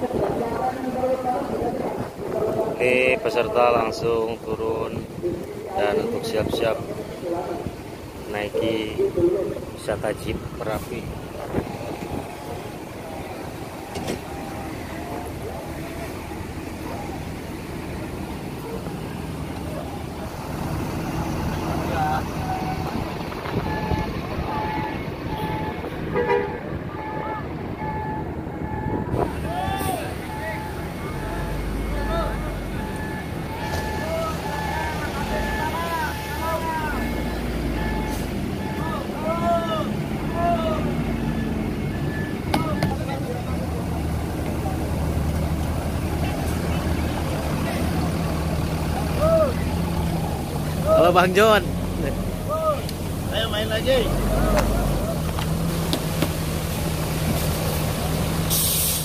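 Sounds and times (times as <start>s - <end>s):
crowd talking and calling out: 0.0s - 58.5s
diesel bus engines rumbling: 0.0s - 59.0s.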